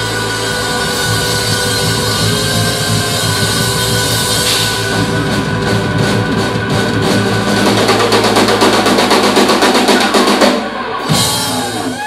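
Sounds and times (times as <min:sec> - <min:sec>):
rapid drum roll: 0:00.0 - 0:12.0
rock band playing: 0:00.0 - 0:12.0.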